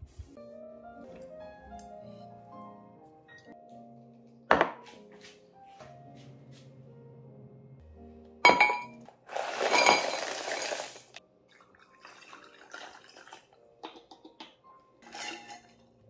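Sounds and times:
dishes clinking: 8.5s - 9.0s, 15.0s - 15.9s
dishes scraping and clattering: 15.0s - 16.0s.

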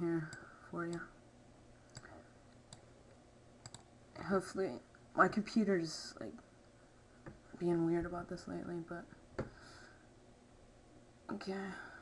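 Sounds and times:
computer mouse clicks: 1.9s - 2.9s, 3.6s - 3.9s.

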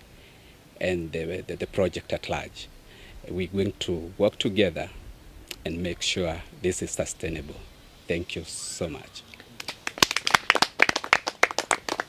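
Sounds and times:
people clapping: 9.3s - 12.0s.

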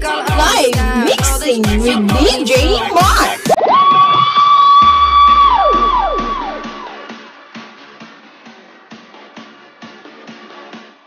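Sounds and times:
high woooh shout with echo: 0.2s - 7.1s
deep bass boom: 4.9s - 7.0s.

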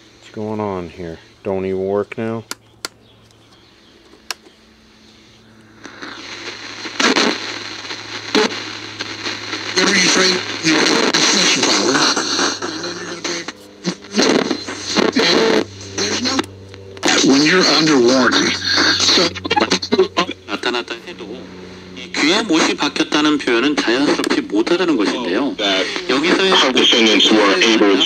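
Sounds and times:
radio switch clicks: 2.4s - 4.6s
radio hiss: 4.6s - 28.0s
radio talk through small speaker: 5.8s - 28.0s.

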